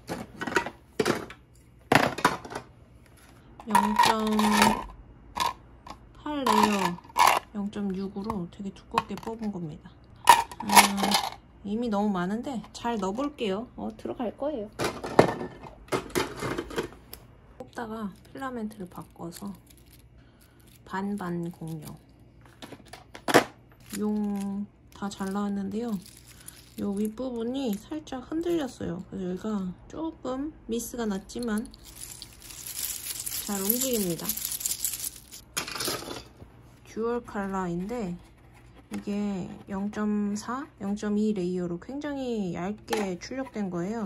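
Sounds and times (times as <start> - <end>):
handling of plastic toy: 17.6 - 28.8, 31.4 - 36.2
plastic pieces clattering in box: 19.0 - 20.0, 22.8 - 27.2, 31.4 - 36.2
plastic segments clicking and rattling: 23.8 - 28.7, 31.4 - 35.4.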